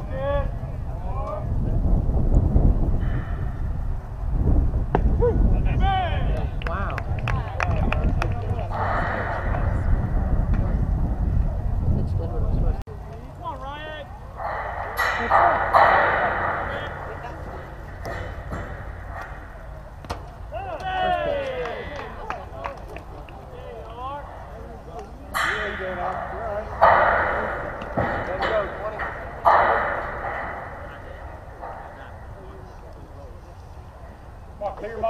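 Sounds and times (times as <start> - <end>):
spectators and players calling out: 13.3 - 34.5.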